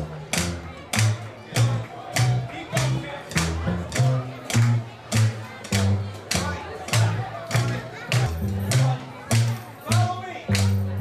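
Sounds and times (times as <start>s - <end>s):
drums struck with sticks: 0.0s - 11.0s
low bass notes: 0.0s - 11.0s.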